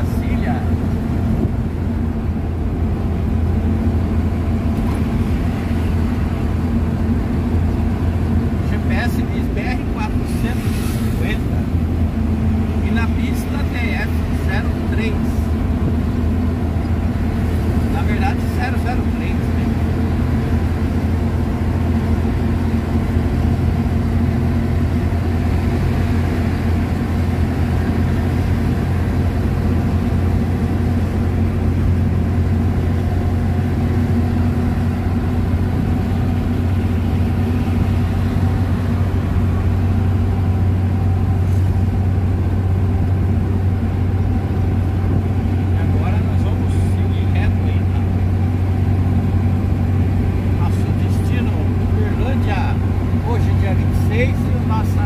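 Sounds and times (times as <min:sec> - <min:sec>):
road noise: 0:00.0 - 0:55.0
truck engine running: 0:00.0 - 0:55.0.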